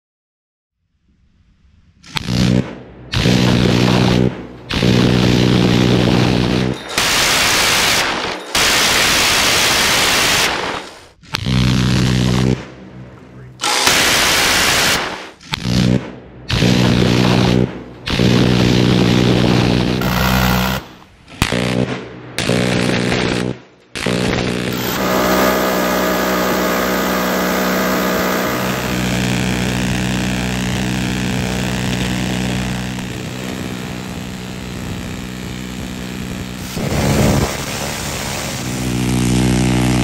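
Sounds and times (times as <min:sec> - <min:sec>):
machine-gun fire in long bursts: 0:02.3 - 0:11.2, 0:13.6 - 0:40.0.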